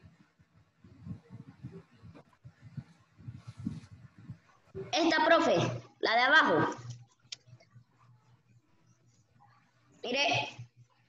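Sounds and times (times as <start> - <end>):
open microphone background noise: 0.0 - 11.0
child speaking: 5.0 - 6.8, 10.0 - 10.6.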